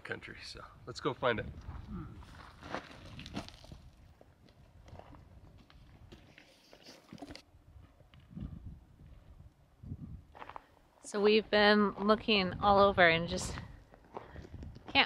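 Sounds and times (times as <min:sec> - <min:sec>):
footsteps on gravelly ground: 0:01.5 - 0:09.3, 0:10.3 - 0:10.8, 0:13.5 - 0:15.0.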